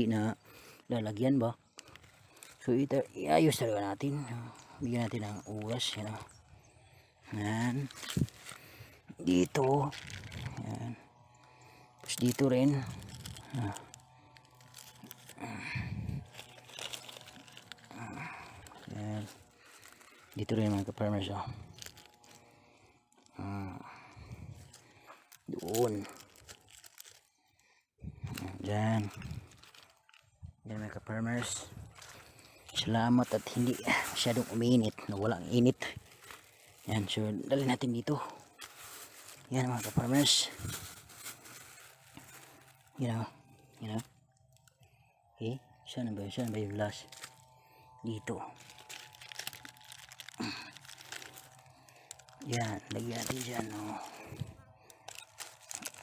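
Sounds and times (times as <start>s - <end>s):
man speaking: 0.0s - 1.6s, 2.6s - 6.3s, 7.2s - 8.2s, 9.1s - 11.0s, 12.0s - 13.9s, 17.9s - 19.4s, 20.3s - 21.8s, 25.5s - 26.2s, 28.1s - 29.4s, 30.6s - 32.1s, 32.7s - 36.0s, 36.8s - 38.5s, 39.4s - 40.8s, 43.0s - 44.1s, 45.4s - 47.1s, 48.0s - 48.6s, 52.4s - 54.5s
dry fronds rustling and crackling: 0.0s - 56.0s
plastic bag crinkling: 0.2s - 56.0s.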